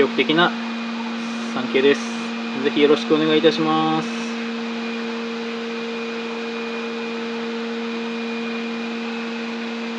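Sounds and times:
machinery hum with high whine: 0.0 - 9.9.

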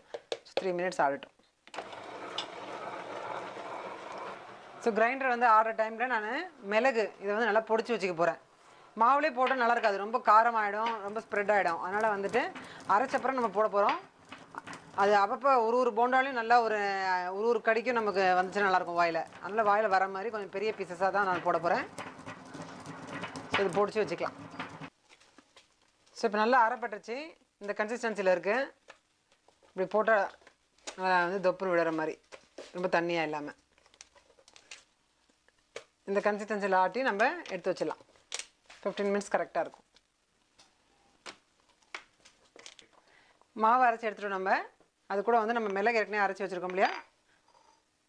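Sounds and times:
wet grinder whirring: 1.7 - 5.3, 11.3 - 15.2, 18.1 - 24.9.

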